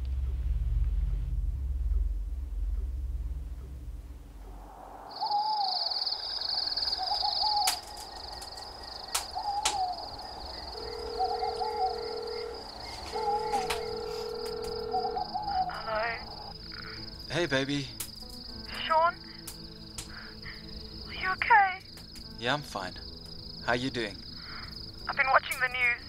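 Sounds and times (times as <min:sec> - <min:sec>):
low droning tones: 0:00.0 - 0:05.1
crickets trilling: 0:03.7 - 0:26.0
bird calling: 0:05.1 - 0:16.5
sharp clicks: 0:07.6 - 0:09.8.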